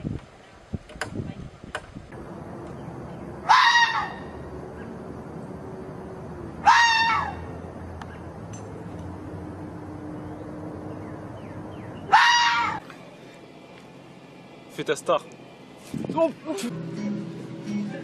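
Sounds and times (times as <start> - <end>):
fox calling: 3.4 - 5.0, 6.6 - 7.5, 12.0 - 12.8.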